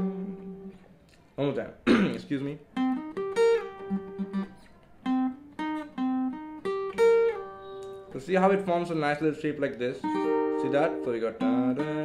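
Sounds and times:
acoustic guitar single-note riff: 0.0s - 0.8s, 2.6s - 8.8s, 9.5s - 12.0s.

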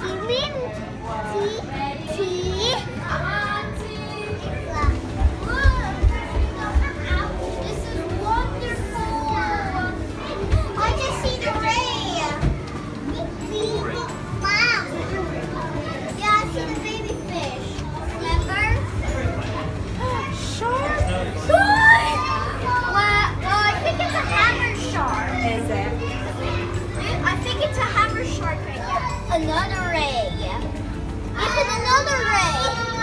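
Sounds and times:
children chattering: 0.0s - 33.0s
indoor crowd hubbub: 0.0s - 33.0s.

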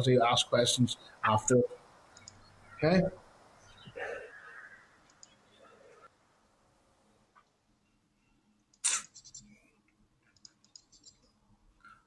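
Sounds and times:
sharp clicks: 2.1s - 2.5s, 5.0s - 5.4s, 10.3s - 11.3s.

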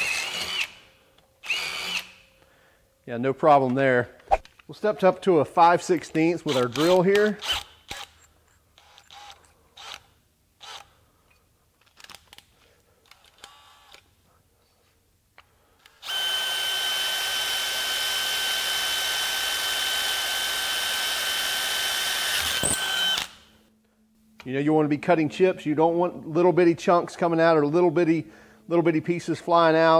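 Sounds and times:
cordless drill drilling metal: 0.0s - 2.2s, 6.5s - 10.9s, 13.4s - 14.0s, 15.9s - 23.5s.

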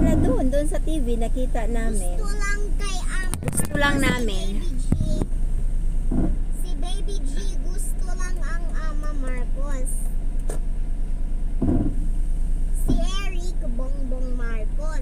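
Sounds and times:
car engine idling: 0.0s - 15.0s
dull thumps: 6.0s - 6.4s, 11.6s - 12.1s.

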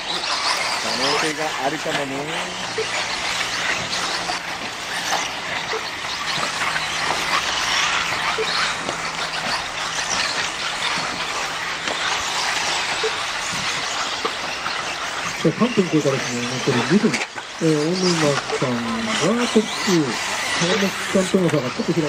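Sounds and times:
rc buggy motors whining: 0.0s - 22.0s
tyres scrabbling over dirt: 0.0s - 22.0s.

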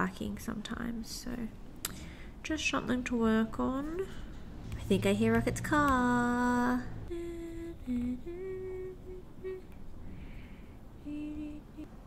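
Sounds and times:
woman humming: 6.0s - 9.8s, 11.0s - 12.0s.

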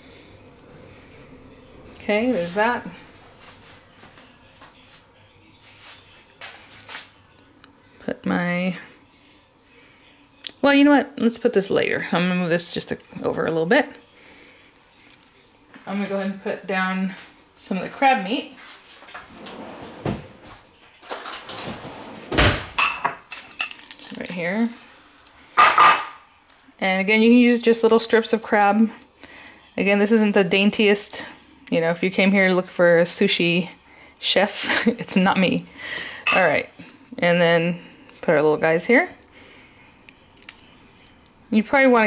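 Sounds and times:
ringing clink of bowl: 36.3s - 36.6s.

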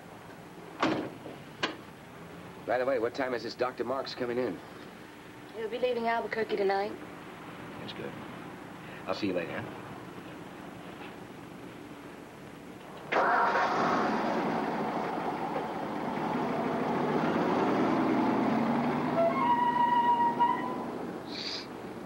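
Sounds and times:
car engine starting and pulling away: 13.0s - 21.2s.

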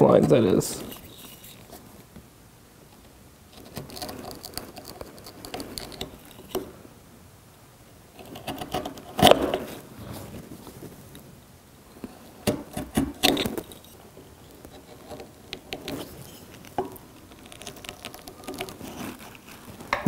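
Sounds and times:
chisel paring wood: 8.2s - 9.7s, 12.4s - 13.6s.

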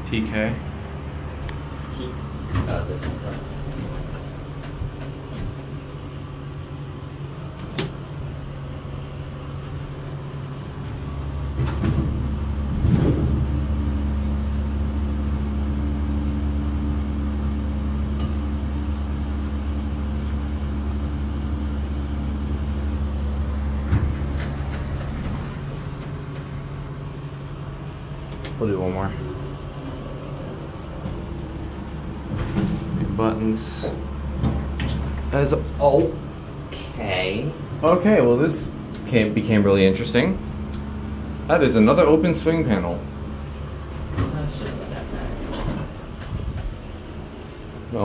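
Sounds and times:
hydraulic drive humming: 0.0s - 37.0s
fan whirring: 0.0s - 48.0s
elevator doors closing thud: 10.9s - 13.8s, 23.7s - 26.6s, 29.3s - 36.4s, 43.8s - 47.2s.

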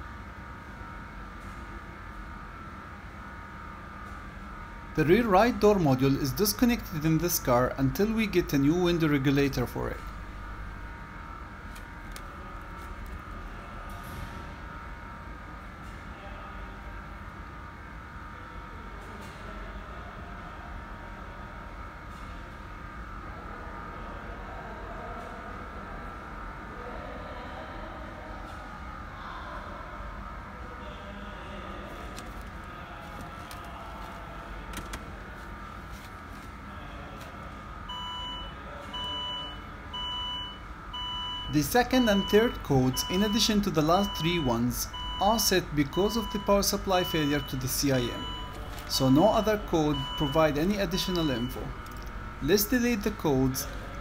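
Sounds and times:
low background hum: 0.0s - 54.0s
faint steady tones: 37.9s - 54.0s
short electronic beeps: 38.0s - 53.1s.

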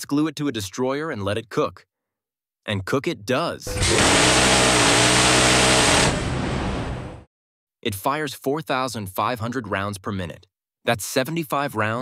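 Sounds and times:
rotary cannon firing buzz: 3.7s - 7.2s.

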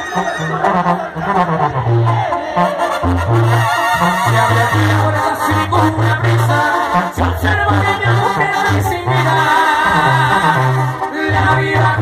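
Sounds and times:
brass band with tuba: 0.0s - 12.0s
loud singing: 0.0s - 12.0s.

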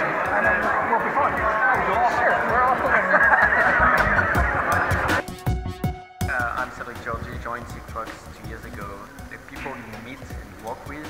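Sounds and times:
men laughing heartily: 0.0s - 5.2s.

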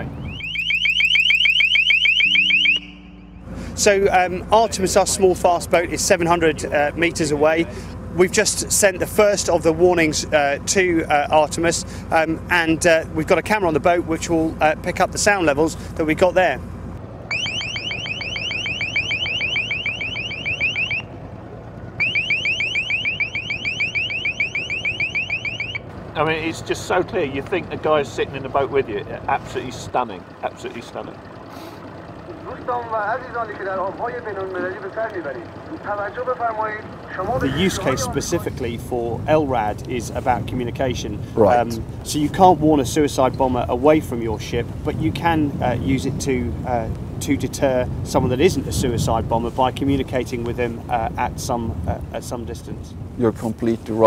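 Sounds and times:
rapid rising warning chirps: 0.0s - 4.6s, 16.7s - 26.7s, 30.0s - 38.4s
steady low hum: 0.0s - 43.9s.

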